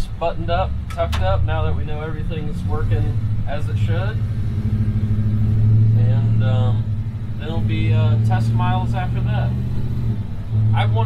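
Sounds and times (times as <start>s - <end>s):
engine drone: 0.0s - 11.0s
road rumble: 0.0s - 11.0s.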